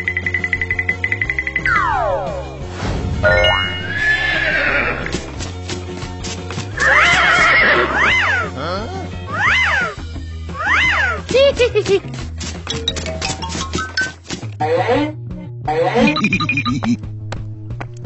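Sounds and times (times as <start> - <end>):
cartoon background music: 0.0 - 17.7
pitch glide sound effect: 1.6 - 5.1.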